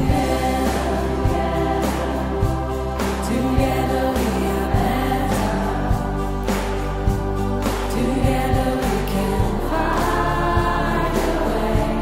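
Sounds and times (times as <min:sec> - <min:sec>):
choir singing sustained chords: 0:00.0 - 0:12.0.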